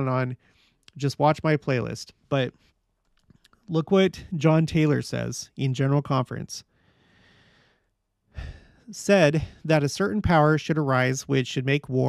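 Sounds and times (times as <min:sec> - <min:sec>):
man speaking: 0:00.0 - 0:02.6, 0:03.6 - 0:06.6, 0:08.4 - 0:12.0
man breathing: 0:00.4 - 0:00.8, 0:06.7 - 0:09.6.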